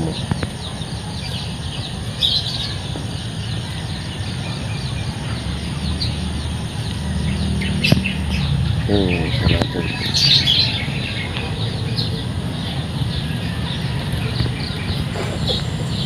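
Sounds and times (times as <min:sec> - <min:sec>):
birds chirping: 0:00.0 - 0:16.0.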